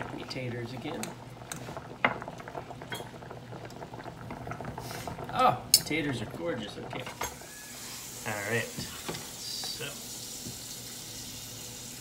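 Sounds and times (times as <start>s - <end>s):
water boiling and bubbling: 0.0s - 12.0s.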